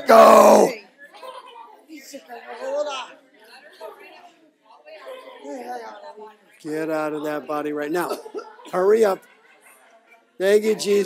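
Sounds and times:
faint voices murmuring: 0.0s - 11.0s.

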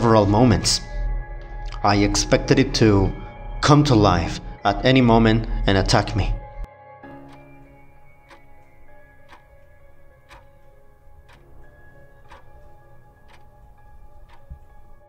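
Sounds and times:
ambient music drone: 0.0s - 15.0s
clock ticking: 7.2s - 15.0s.

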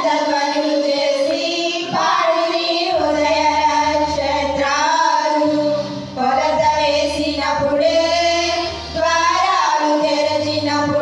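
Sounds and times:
women singing a hymn: 0.0s - 11.0s.

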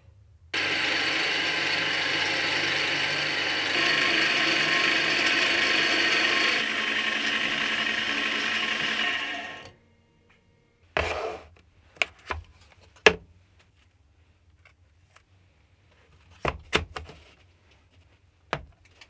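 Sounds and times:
drill boring into steel rod: 0.6s - 9.8s
metal lathe gears whirring: 0.6s - 9.8s.

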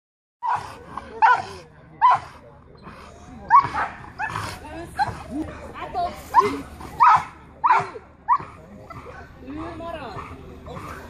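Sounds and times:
dog barking: 0.4s - 2.3s, 6.4s - 8.4s.

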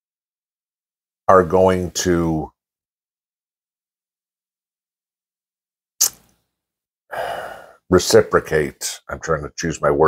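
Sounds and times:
man speaking: 1.3s - 2.5s, 7.9s - 10.0s
man sighing: 7.1s - 7.8s
sharp breath: 7.1s - 7.9s.

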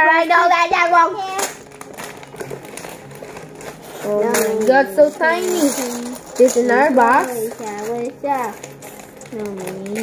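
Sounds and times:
plastic bag rustling: 1.2s - 10.0s
plastic pieces clicking together: 1.4s - 10.0s.

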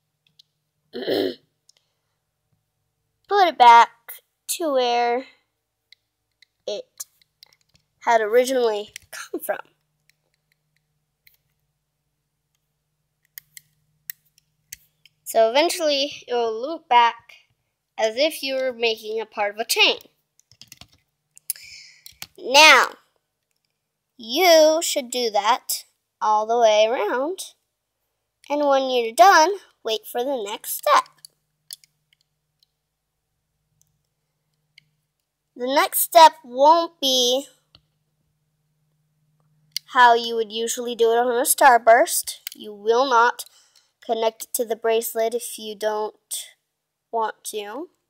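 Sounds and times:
faint plastic clicks: 0.2s - 0.6s, 1.6s - 2.6s, 5.9s - 7.9s, 12.5s - 15.3s, 20.0s - 22.4s, 30.8s - 32.8s.

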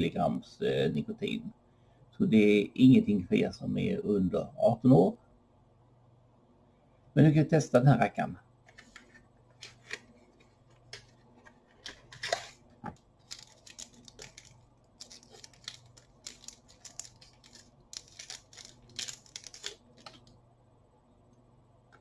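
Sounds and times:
cardboard box crinkling and tearing: 11.8s - 12.6s, 13.2s - 20.2s.

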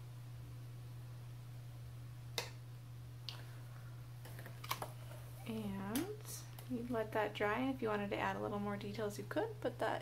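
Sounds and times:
steady low hum: 0.0s - 10.0s
woman speaking: 5.4s - 10.0s.

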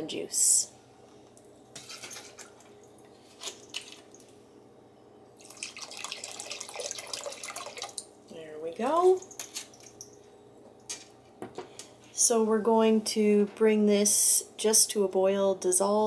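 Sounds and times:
liquid pouring into a pot: 5.4s - 8.1s.

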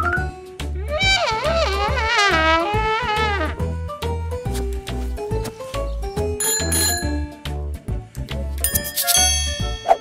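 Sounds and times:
playful music with bouncing bass: 0.0s - 10.0s
high bell-like ringing: 6.4s - 7.4s, 8.6s - 10.0s.

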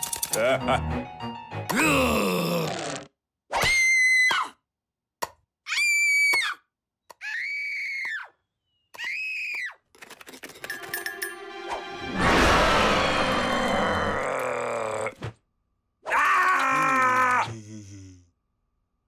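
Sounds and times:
cartoon character laughing: 0.3s - 0.9s
high drawn-out screams: 12.2s - 15.1s.

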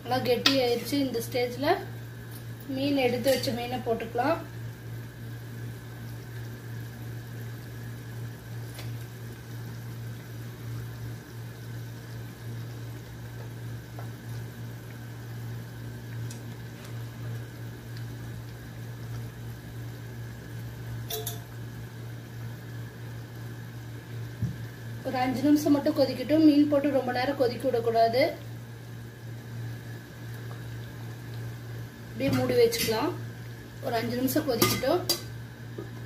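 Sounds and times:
pot simmering: 0.0s - 36.0s.

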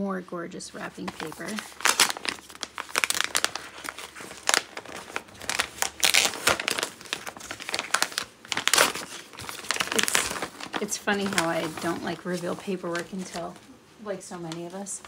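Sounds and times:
wrapping paper crinkling: 0.8s - 15.0s.

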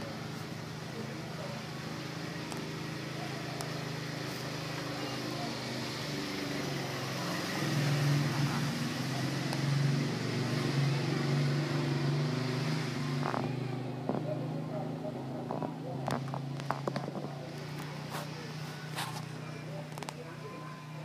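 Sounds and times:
low motor hum: 0.0s - 21.0s.

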